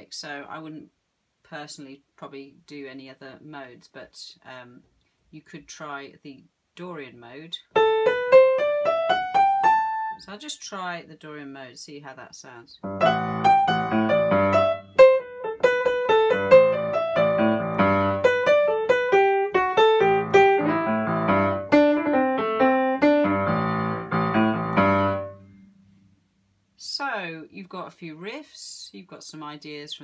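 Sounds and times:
jazz-blues piano improvisation: 7.7s - 10.2s, 12.8s - 25.7s.

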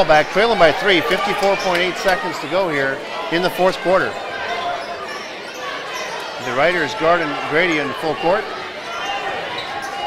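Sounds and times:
basketball court sounds: 0.0s - 10.0s
murmur of crowd voices: 0.0s - 10.0s.

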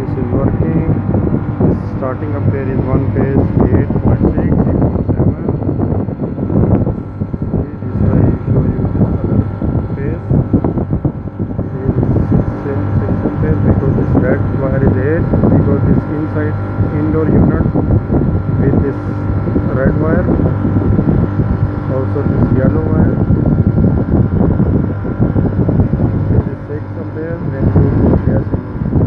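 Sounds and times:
air conditioner compressor humming: 0.0s - 29.0s.

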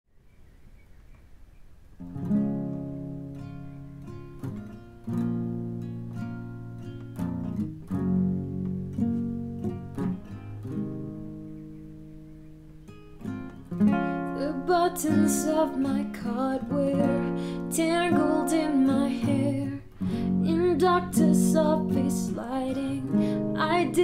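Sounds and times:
acoustic guitar chords: 2.0s - 24.0s.

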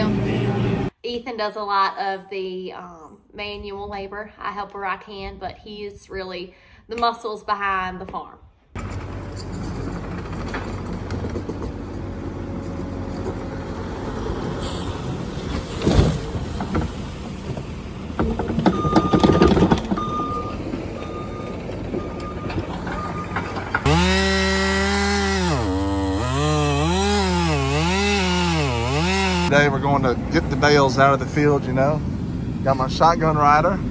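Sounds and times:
loader engine running: 8.8s - 33.9s
backup alarm beeping: 18.6s - 23.5s
chainsaw cutting log: 23.8s - 29.6s.

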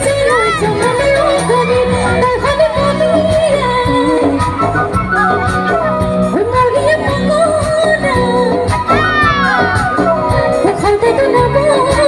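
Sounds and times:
band accompaniment: 0.0s - 12.0s
woman singing into a microphone: 0.0s - 12.0s.

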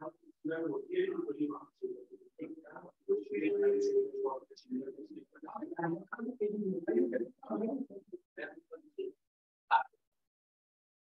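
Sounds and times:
indistinct speech: 0.0s - 9.1s.

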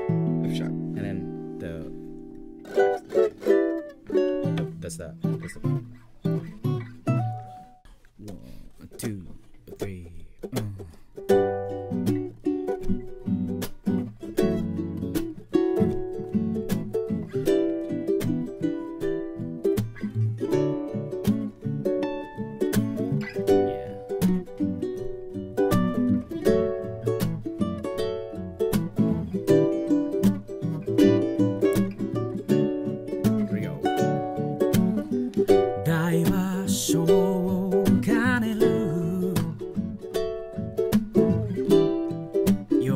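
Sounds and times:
ukuleles playing: 0.0s - 42.9s.

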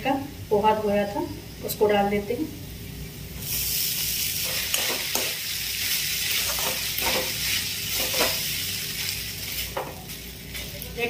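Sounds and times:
food sizzling in hot oil: 0.0s - 11.0s.

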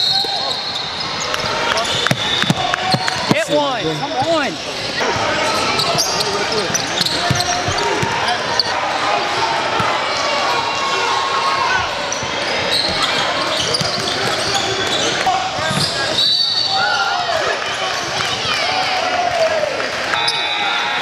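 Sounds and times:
sneaker squeaks: 0.0s - 8.8s, 12.0s - 16.8s
voices echoing in a gym: 0.0s - 21.0s.

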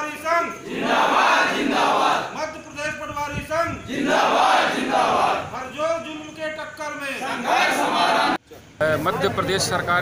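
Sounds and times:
crowd shouting a slogan: 0.6s - 2.4s, 3.9s - 5.6s, 7.2s - 8.4s.

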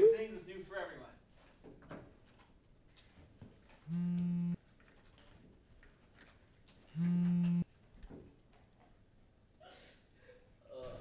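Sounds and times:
smartphone vibrating buzz: 3.9s - 4.6s, 6.9s - 7.6s.

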